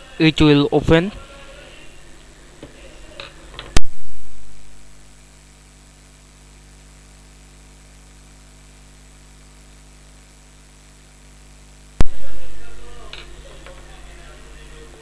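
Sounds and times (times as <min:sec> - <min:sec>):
electrical mains hum and hiss: 0:00.0 - 0:15.0
loud sharp pop: 0:03.8 - 0:04.5, 0:12.0 - 0:12.6.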